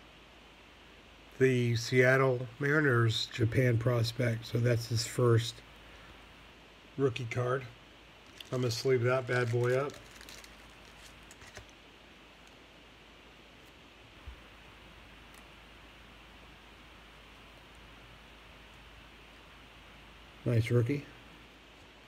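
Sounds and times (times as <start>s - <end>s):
low steady hiss: 0.0s - 22.0s
card sliding into plastic sleeve: 8.3s - 11.8s.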